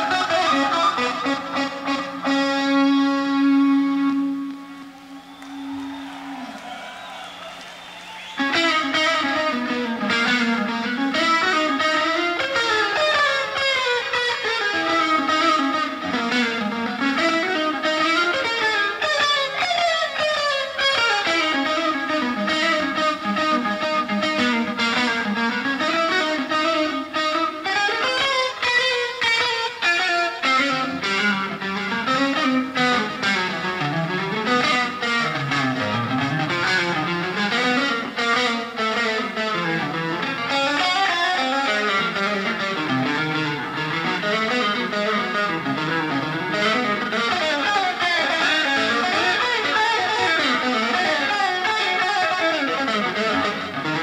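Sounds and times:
distorted electric guitar lead: 0.0 - 54.0.

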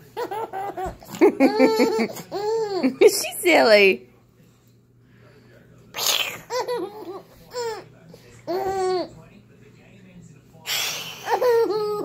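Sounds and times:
baby giggling: 0.1 - 3.0, 6.2 - 7.9, 8.5 - 9.1, 11.1 - 12.0.

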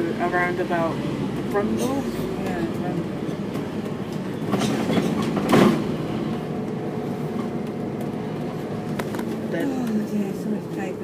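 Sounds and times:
bus engine and cabin drone: 0.0 - 11.0.

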